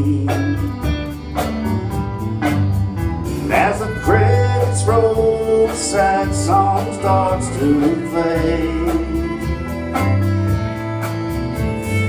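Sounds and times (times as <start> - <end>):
country band playing: 0.0 - 12.0
fiddle: 0.0 - 12.0
strummed guitars: 0.0 - 12.0.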